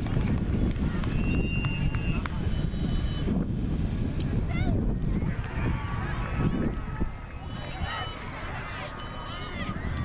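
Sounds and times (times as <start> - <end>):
indistinct spectators' voices: 0.0 - 10.0
wind rumbling on microphone: 0.0 - 10.0
high steady whistle tone: 1.1 - 3.5, 5.6 - 10.0.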